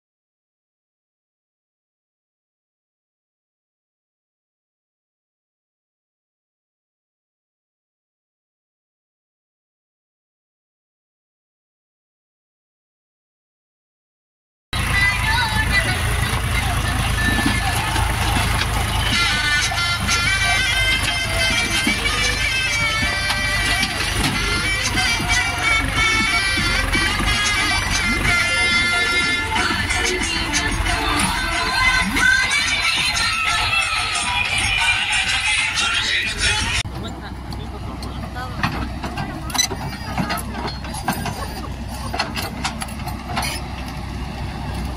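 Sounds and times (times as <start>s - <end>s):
tipper trolley dumping soil: 14.8s - 34.2s
song with voice and instruments: 14.8s - 36.8s
tractor diesel engine running: 14.8s - 44.9s
metal clanks and knocks: 16.2s - 33.4s, 38.0s - 44.0s.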